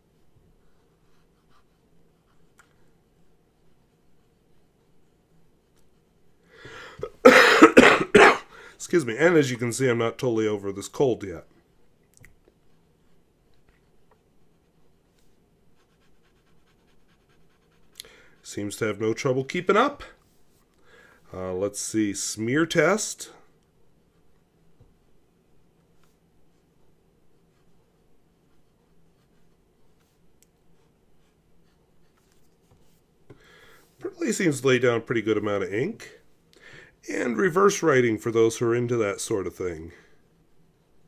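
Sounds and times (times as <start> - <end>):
rubbing on paper: 0.1 - 6.4, 12.6 - 19.0, 23.9 - 34.1
fountain pen scratching on paper: 13.9 - 18.5, 24.0 - 33.0.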